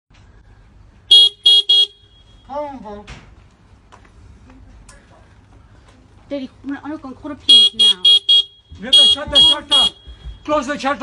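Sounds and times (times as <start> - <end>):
scooter horn beeping: 1.1 - 2.4, 7.5 - 10.2.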